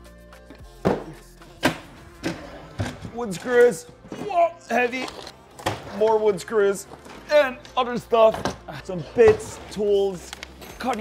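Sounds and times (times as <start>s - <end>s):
background music with steady tones: 0.0s - 11.0s.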